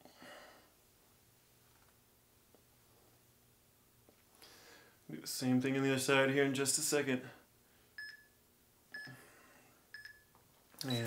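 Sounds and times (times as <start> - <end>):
short electronic timer beeps: 8.0 - 8.4, 10.0 - 10.3.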